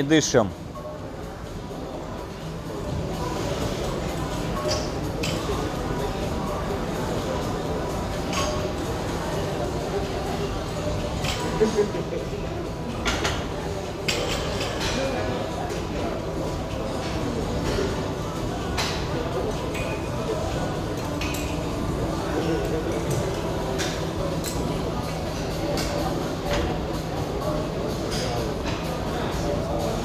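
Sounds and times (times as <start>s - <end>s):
murmur of voices: 0.0s - 30.0s.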